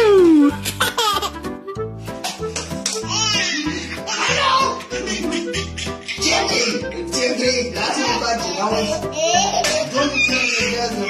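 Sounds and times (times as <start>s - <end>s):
background music: 0.0s - 11.0s
baby laughing: 0.6s - 1.4s, 2.2s - 11.0s.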